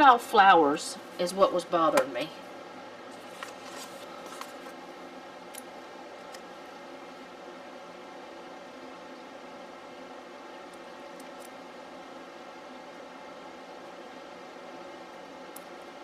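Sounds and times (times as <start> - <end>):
steady background hum: 0.0 - 16.0.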